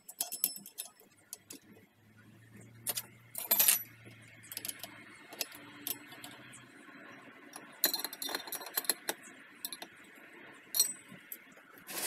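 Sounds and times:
metal spanners clinking: 0.0s - 1.6s, 2.8s - 6.4s, 7.5s - 9.9s, 10.8s - 11.5s.

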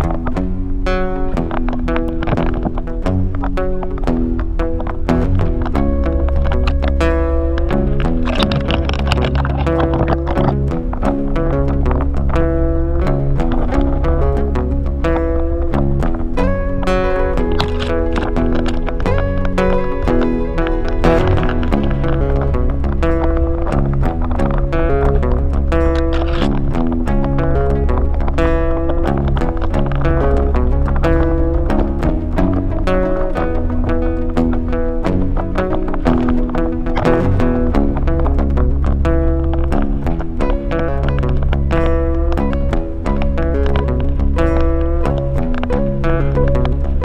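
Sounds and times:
background music with bass beat: 0.0s - 47.0s.

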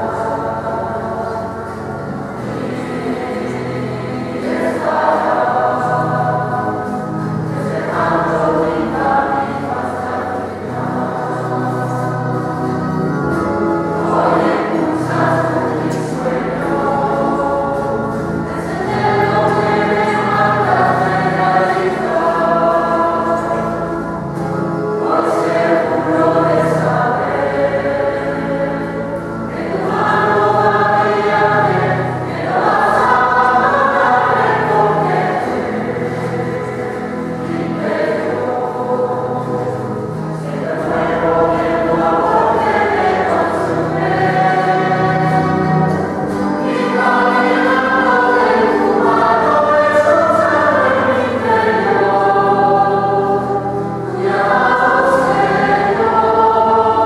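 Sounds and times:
group singing a hymn: 0.0s - 57.0s.

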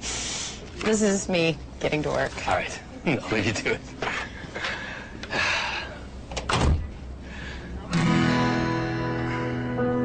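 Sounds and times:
door shutting thud: 6.4s - 6.9s.

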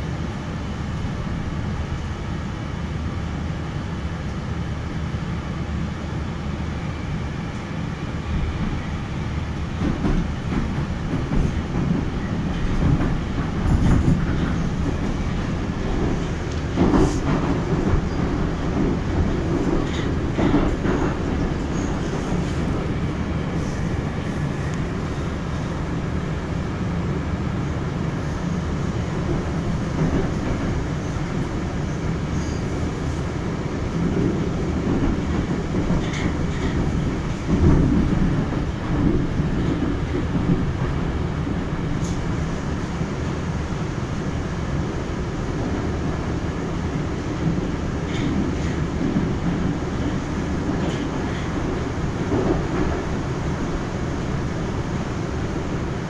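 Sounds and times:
train running rumble: 0.0s - 56.0s
wheels clacking over rail joints: 9.8s - 23.2s, 34.0s - 41.2s, 47.4s - 54.5s.

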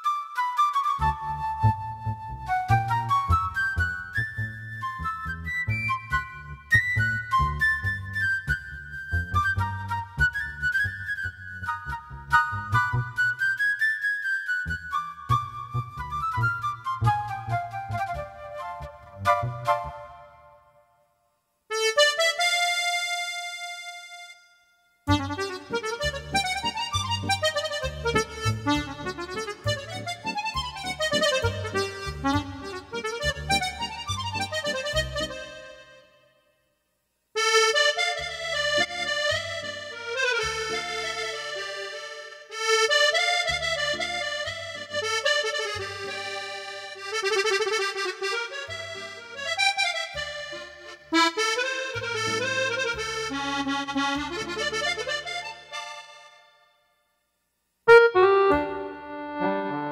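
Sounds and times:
digital accordion playing a tune: 21.7s - 36.4s, 37.4s - 56.8s, 57.9s - 59.9s.

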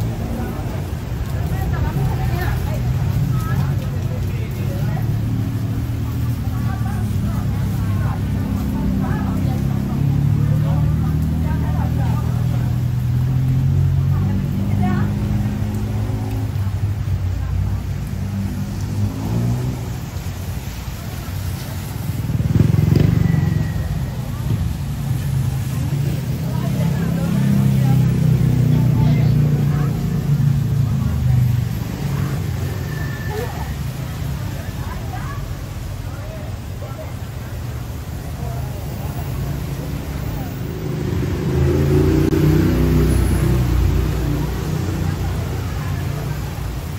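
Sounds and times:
vehicle passing: 0.0s - 35.2s, 37.9s - 46.9s
passers-by talking: 0.0s - 46.9s
vehicle engines running: 0.0s - 46.9s.

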